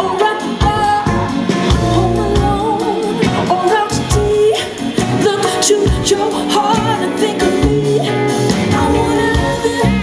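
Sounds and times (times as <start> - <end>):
drums: 0.0 - 10.0
electric guitar: 0.0 - 10.0
woman singing: 0.0 - 10.0.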